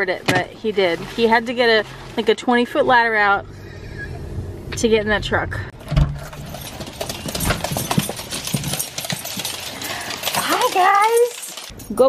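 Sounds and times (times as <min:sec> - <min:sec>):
dog nails clicking on hard floor: 0:06.6 - 0:11.7.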